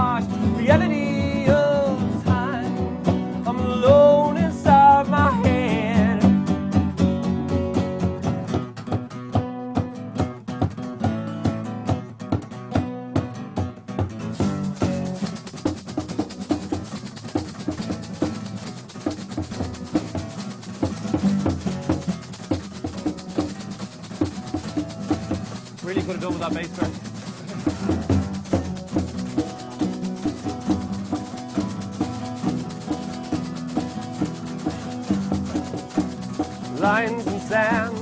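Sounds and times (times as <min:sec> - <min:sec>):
acoustic band playing: 0:00.0 - 0:38.0.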